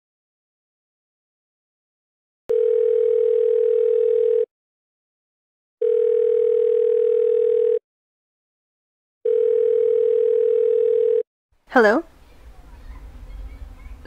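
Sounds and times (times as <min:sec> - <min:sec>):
telephone ringback tone: 0:02.5 - 0:04.5, 0:05.8 - 0:07.8, 0:09.2 - 0:11.2.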